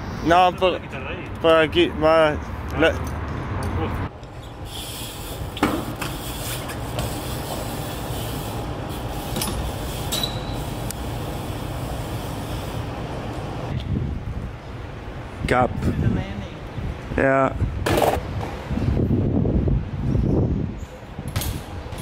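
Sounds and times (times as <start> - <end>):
bike tyres rolling on paving: 4.3 - 13.7.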